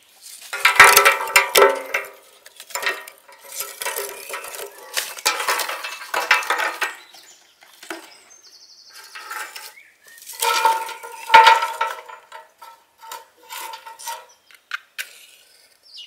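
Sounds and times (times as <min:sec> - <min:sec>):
charcoal clattering against steel: 0:00.3 - 0:07.2, 0:08.9 - 0:14.3.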